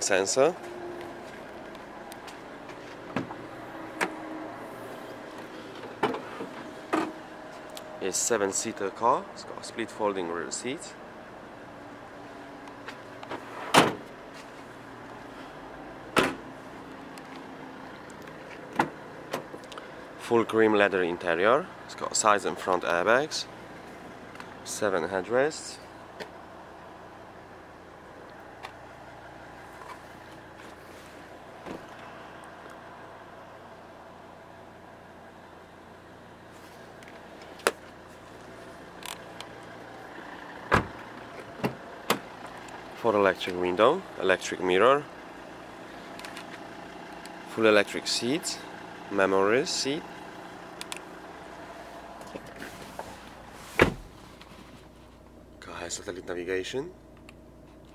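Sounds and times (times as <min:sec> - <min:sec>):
car doors slamming: 0:13.3 - 0:14.1, 0:16.1 - 0:16.5, 0:40.7 - 0:42.3, 0:53.7 - 0:54.2
heavy thump: 0:53.8 - 0:54.2.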